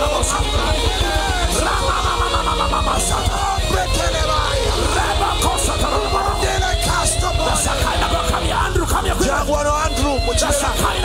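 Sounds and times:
live worship band music: 0:00.0 - 0:11.0
voices singing over music: 0:00.0 - 0:11.0.

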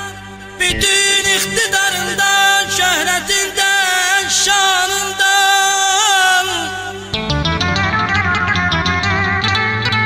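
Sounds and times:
ornamented wavering melody: 0:07.2 - 0:10.0.

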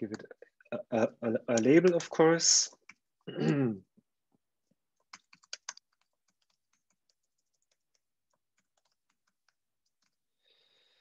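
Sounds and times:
typing on keyboard: 0:01.5 - 0:02.2, 0:05.0 - 0:10.3.

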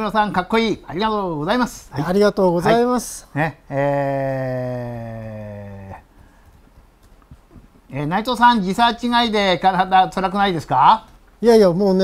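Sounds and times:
person speaking: 0:00.0 - 0:06.1, 0:07.2 - 0:12.0.

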